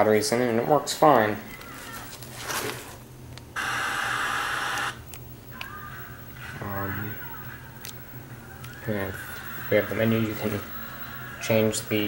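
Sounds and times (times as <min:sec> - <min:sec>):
television static hiss: 0:00.0 - 0:12.0.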